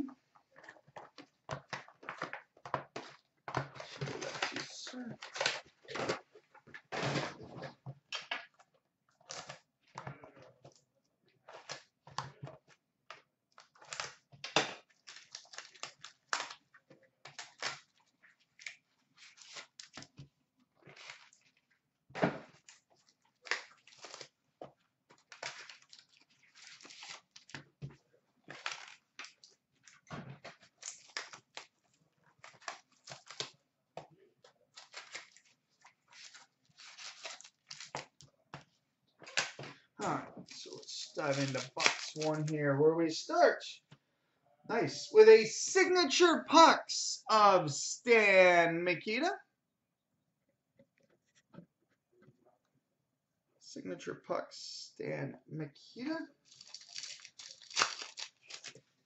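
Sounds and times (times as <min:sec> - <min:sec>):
wrapping crinkling and tearing: 0:01.8 - 0:06.5, 0:13.5 - 0:21.8, 0:22.5 - 0:33.7, 0:34.4 - 0:38.3, 0:39.2 - 0:42.6, 0:56.4 - 0:59.0.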